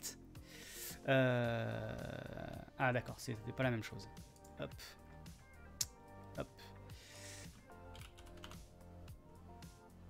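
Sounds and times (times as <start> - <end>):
quiet background music: 0.0 - 10.0
computer keyboard typing: 7.9 - 8.6.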